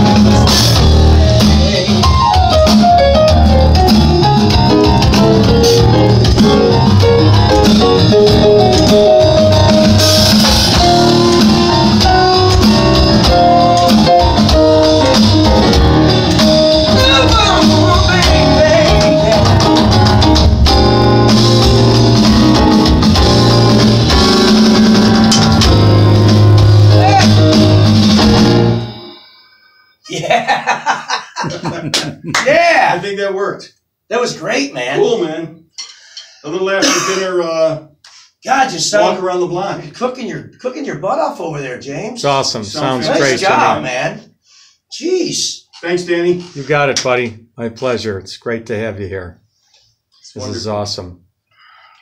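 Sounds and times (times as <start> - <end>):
electronic drum beat: 0.0 - 29.1
band music with electric guitar: 0.0 - 29.4, 42.8 - 43.9.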